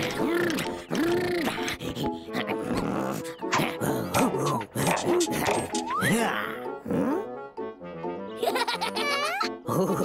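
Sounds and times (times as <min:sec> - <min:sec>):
playful cartoon music: 0:00.0 - 0:10.0.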